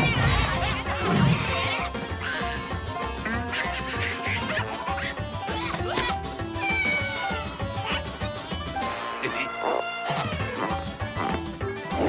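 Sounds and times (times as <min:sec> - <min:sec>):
busy cartoon background music: 0:00.0 - 0:12.0
cartoon cat vocal cry: 0:05.6 - 0:08.1.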